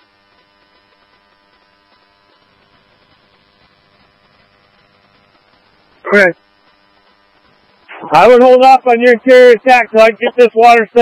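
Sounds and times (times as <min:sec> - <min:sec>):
radio static and hum: 0:00.0 - 0:11.0.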